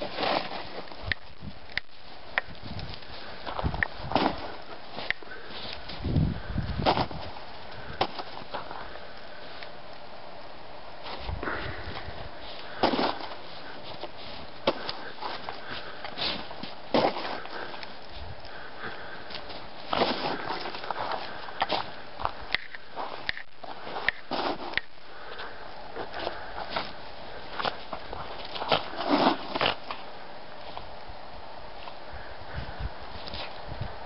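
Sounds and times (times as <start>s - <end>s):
crunching snow: 0.0s - 34.0s.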